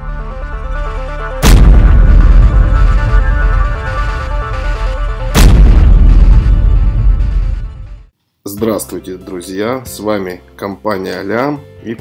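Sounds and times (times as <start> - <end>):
heavy boom and crash: 1.4 - 8.1.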